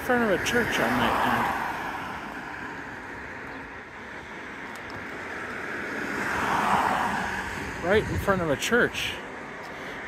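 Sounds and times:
car passing close: 0:00.0 - 0:10.0.

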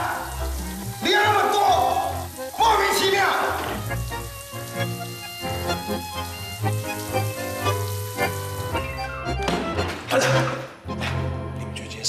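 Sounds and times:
shower water spraying: 0:00.0 - 0:09.5
soft background music: 0:00.0 - 0:12.0.

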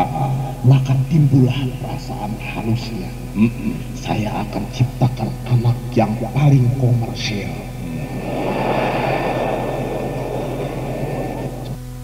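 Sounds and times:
low tape hum: 0:00.0 - 0:12.0
audience laughing and applauding: 0:07.8 - 0:11.8.

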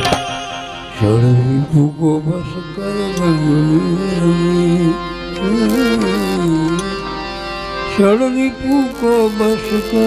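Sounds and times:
tabla stroke: 0:00.0 - 0:01.6
harmonium notes: 0:00.0 - 0:10.0
man singing long note: 0:01.0 - 0:06.9, 0:08.0 - 0:10.0.

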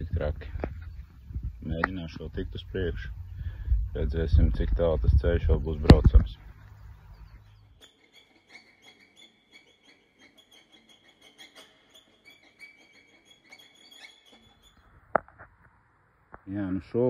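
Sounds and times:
small birds chirping: 0:00.0 - 0:15.2.

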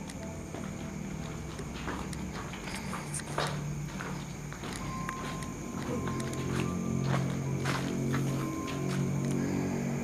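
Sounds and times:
footsteps on littered floor: 0:00.5 - 0:09.2.

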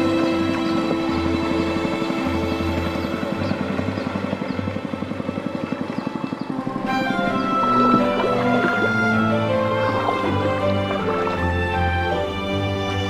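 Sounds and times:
background music: 0:00.0 - 0:13.0
boat motor chugging: 0:00.0 - 0:13.0.

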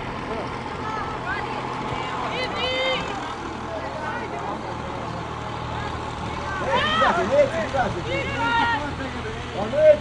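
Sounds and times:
people shouting calls: 0:00.8 - 0:04.6, 0:05.3 - 0:10.0.

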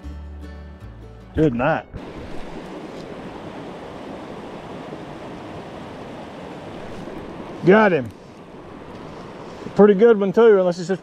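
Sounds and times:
river rushing over rapids: 0:01.9 - 0:11.0.

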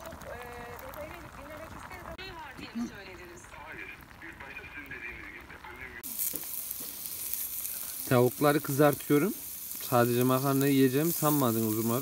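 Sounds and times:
faint voices: 0:00.0 - 0:06.2
meat sizzling on a grill: 0:00.0 - 0:12.0.

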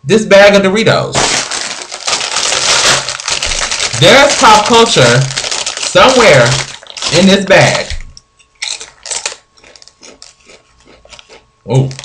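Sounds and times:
plastic chip bag crinkling: 0:01.2 - 0:12.0.

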